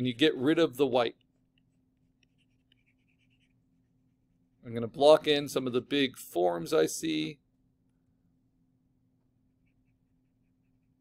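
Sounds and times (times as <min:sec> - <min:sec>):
low steady hum: 0:00.0 - 0:11.0
pen scratching on drawing tablet: 0:01.7 - 0:03.7.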